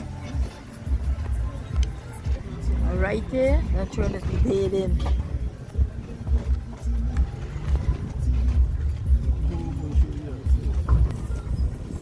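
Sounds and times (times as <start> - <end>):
wind buffeting microphone: 2.9 - 12.0.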